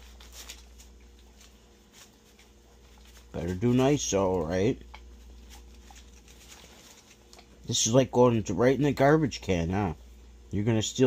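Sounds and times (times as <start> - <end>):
dog licking and chewing: 2.4 - 7.7.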